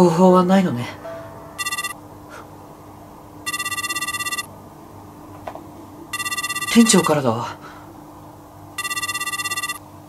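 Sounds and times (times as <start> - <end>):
mobile phone ringtone: 1.6 - 2.0, 3.5 - 4.5, 6.1 - 7.2, 8.8 - 9.8.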